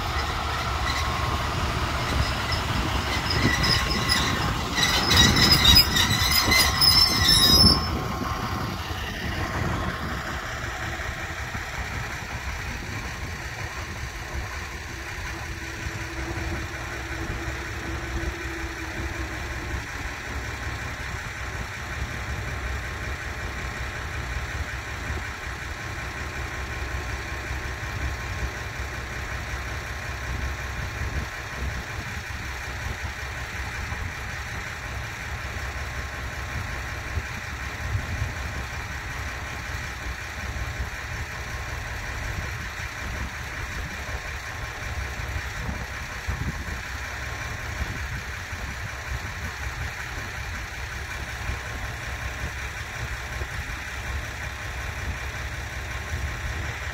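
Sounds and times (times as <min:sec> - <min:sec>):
locomotive wheels squealing: 0:00.0 - 0:23.4
locomotive low rumble: 0:00.0 - 0:56.9.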